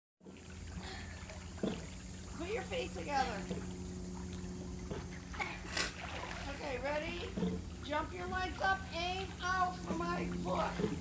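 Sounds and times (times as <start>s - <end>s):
steady low hum: 0.2s - 11.0s
water sloshing from swimming: 0.2s - 11.0s
water splash: 3.4s - 11.0s.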